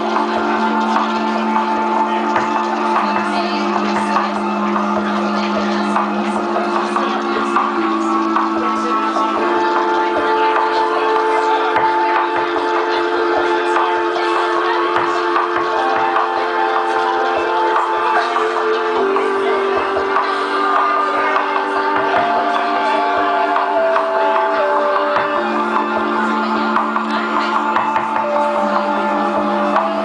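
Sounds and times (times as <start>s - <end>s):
band holding sustained chord: 0.0s - 30.0s.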